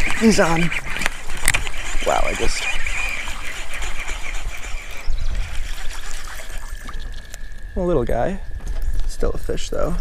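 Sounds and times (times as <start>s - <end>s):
water splashing and trickling: 0.0s - 8.4s.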